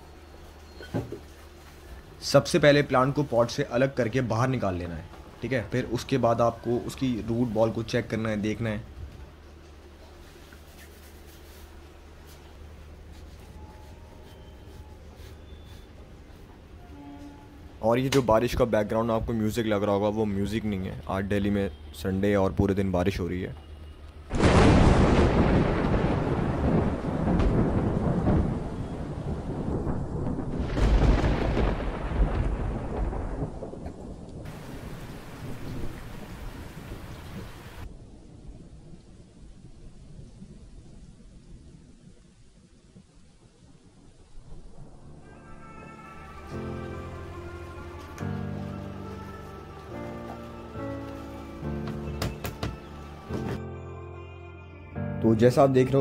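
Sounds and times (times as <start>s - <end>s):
steady rain: 0.0s - 20.9s, 23.3s - 53.4s
thunder rumbling: 24.3s - 52.4s.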